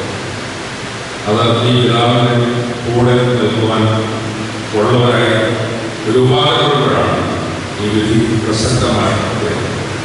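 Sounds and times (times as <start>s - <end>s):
man intoning through loudspeaker: 1.2s - 10.0s.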